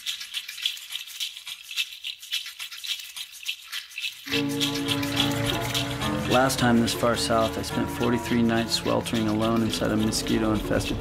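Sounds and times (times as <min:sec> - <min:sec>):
shaker rattling rhythm: 0:00.0 - 0:11.0.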